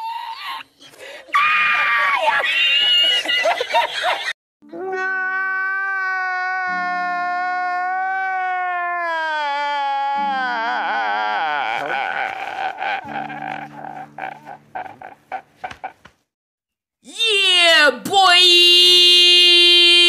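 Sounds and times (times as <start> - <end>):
man wailing and sobbing: 4.7 - 16.0, 18.4 - 20.0.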